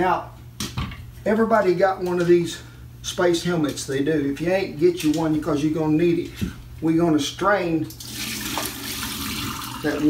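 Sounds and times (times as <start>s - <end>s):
water splashing into sink: 8.0s - 10.0s.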